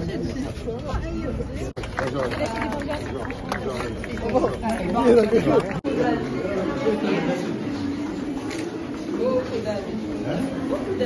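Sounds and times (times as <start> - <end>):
overlapping indistinct chatter: 0.0 - 11.0.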